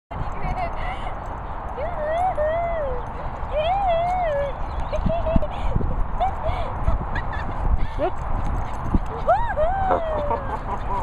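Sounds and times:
high wavering vocal calls: 9.1 - 11.0.

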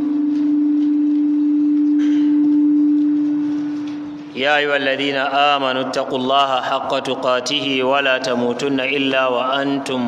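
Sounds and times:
microphone feedback hum: 0.0 - 8.5.

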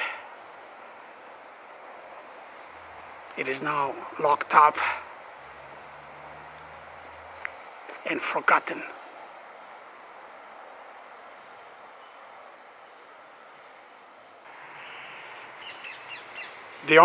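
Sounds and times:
bird harsh calls: 0.0 - 7.8, 11.5 - 17.0
outdoor background hiss: 0.0 - 17.0.

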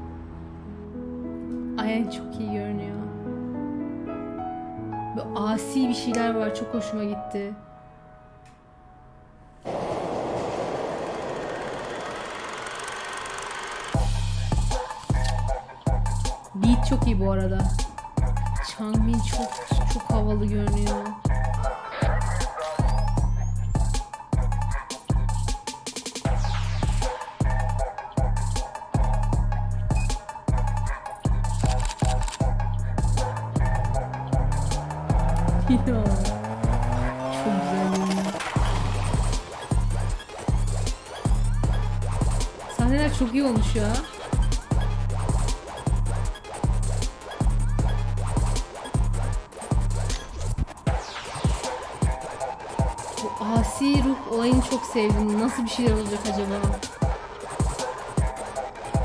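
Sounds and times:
scooter engine rattling: 10.3 - 14.2
remote-control car motor revving: 10.9 - 14.0
music with a beat: 14.0 - 37.4, 38.5 - 59.0.

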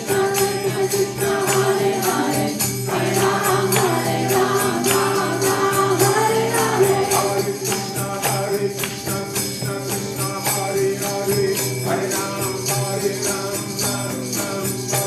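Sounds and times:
acoustic guitar: 0.0 - 15.0
hand cymbals jingling: 0.0 - 15.0.

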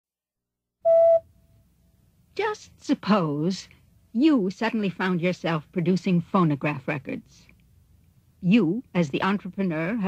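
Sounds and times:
short electronic beep: 0.8 - 1.3.

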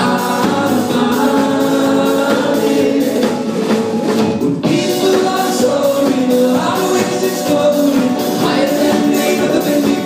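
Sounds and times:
drums: 0.0 - 10.0
electric guitars: 0.0 - 10.0
person singing: 4.7 - 10.0.

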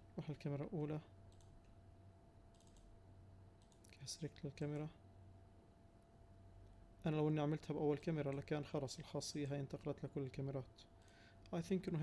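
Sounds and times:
faint steady hum: 0.0 - 12.0
computer mouse clicks: 1.3 - 1.7, 2.5 - 2.9, 3.6 - 4.0.

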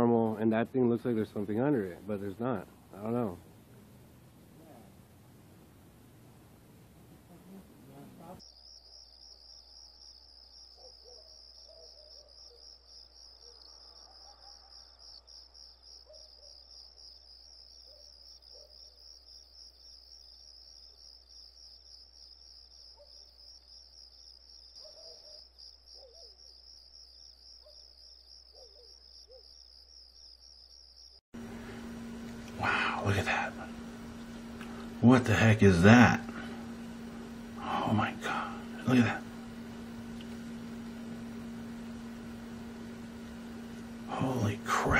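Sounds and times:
crickets chirping: 0.4 - 44.9.

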